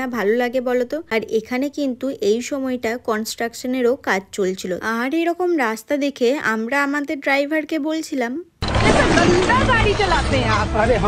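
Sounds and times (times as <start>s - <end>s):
woman narrating: 0.0s - 10.6s.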